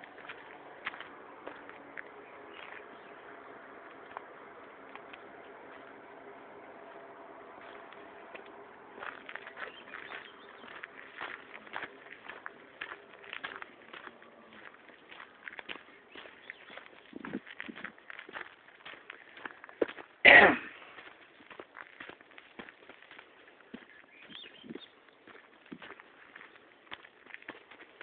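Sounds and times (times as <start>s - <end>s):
faint steady hum: 0.0s - 28.0s
footsteps crunching on gravel: 0.0s - 28.0s.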